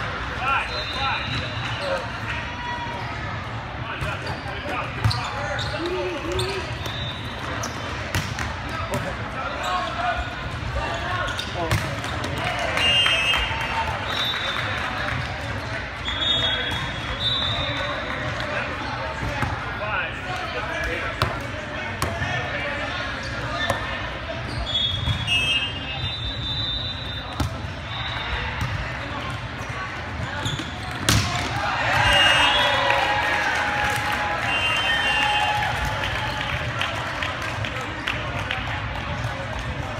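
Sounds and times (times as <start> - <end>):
sneaker squeaks on court floor: 4.0 - 8.3, 9.5 - 12.4, 29.6 - 31.2
volleyball hits: 30.3 - 32.2.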